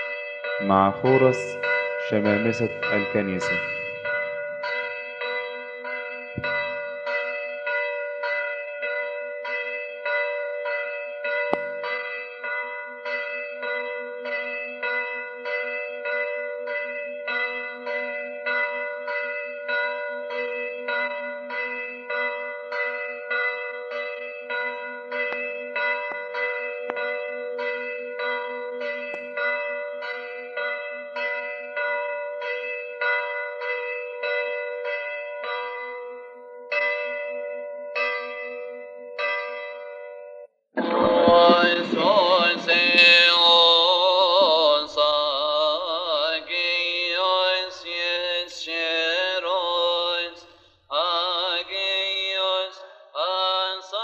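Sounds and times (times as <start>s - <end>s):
church bell ringing: 0.0s - 54.0s.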